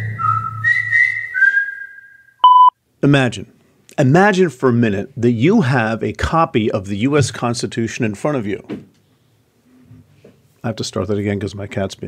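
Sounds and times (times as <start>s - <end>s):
whistled notes: 0.0s - 2.8s.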